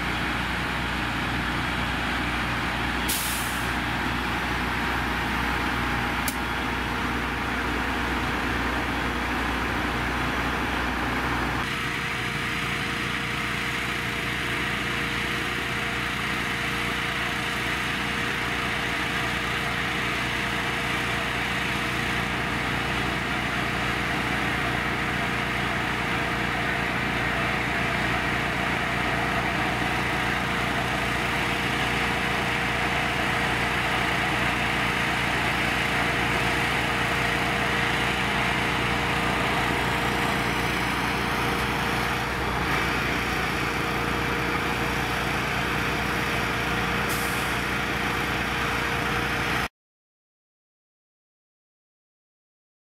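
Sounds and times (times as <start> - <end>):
fire engine running: 0.0 - 49.7.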